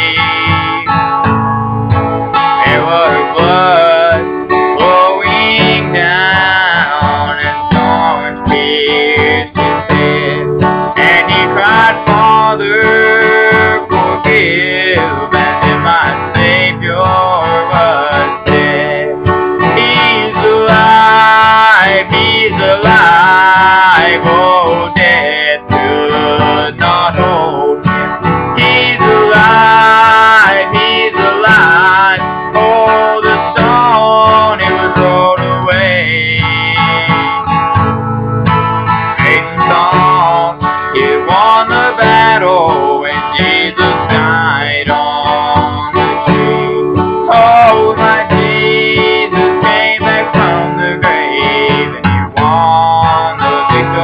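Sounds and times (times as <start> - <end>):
man singing: 0.0 - 1.3, 2.3 - 37.9, 38.9 - 54.0
acoustic guitar: 0.0 - 54.0.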